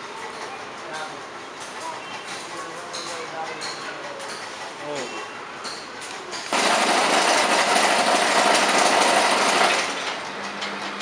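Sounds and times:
machine running: 6.5 - 11.0.

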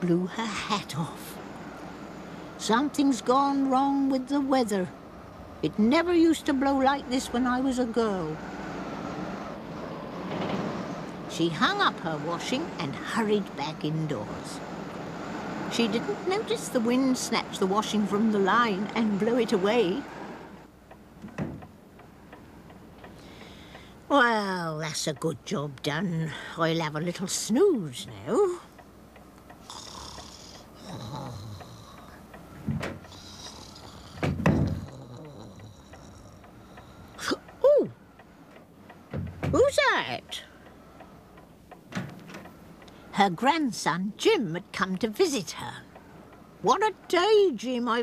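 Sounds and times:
clock ticking: 20.6 - 48.0
door clunk: 21.2 - 21.7, 34.2 - 34.9, 39.1 - 39.6
thump: 21.3 - 21.6, 34.2 - 34.8.

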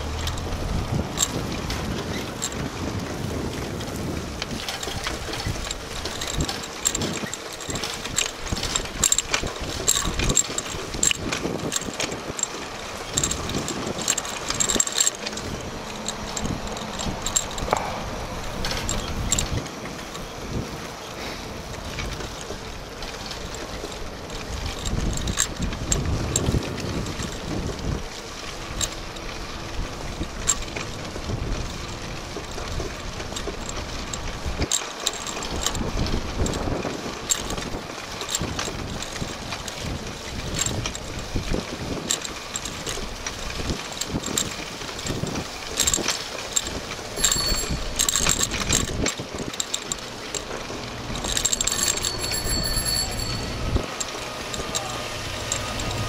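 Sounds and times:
wind buffeting microphone: 0.0 - 52.4
bicycle clicks and rattles: 0.0 - 56.0
tyre noise on pavement: 0.0 - 56.0.

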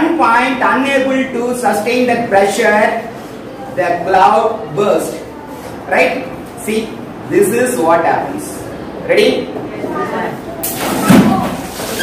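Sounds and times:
water balloon bursting: 10.6 - 12.0
water splashing down: 10.6 - 12.0.

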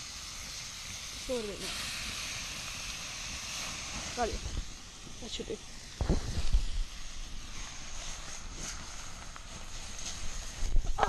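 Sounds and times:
campfire crackling: 0.0 - 11.0.

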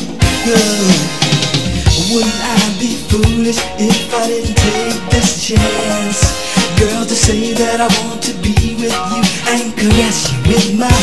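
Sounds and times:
drum kit beat: 0.0 - 11.0
guitar: 0.0 - 11.0
keyboard: 0.0 - 11.0
person singing: 0.0 - 11.0.

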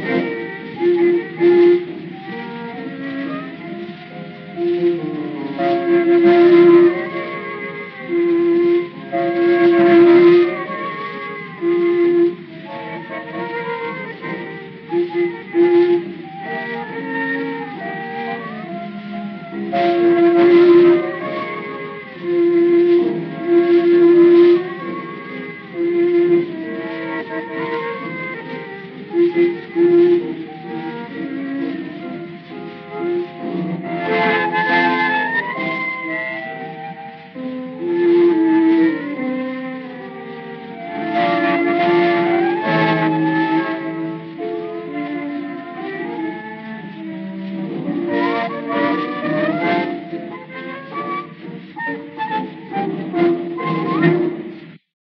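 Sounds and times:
instrumental tango: 0.0 - 54.9.

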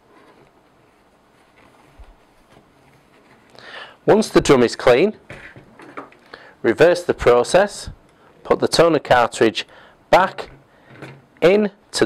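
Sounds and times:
faint rubbing and handling noise: 0.0 - 6.3.

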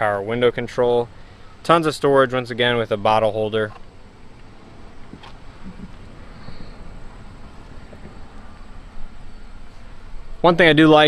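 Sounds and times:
wind rumble on microphone: 4.3 - 10.4.

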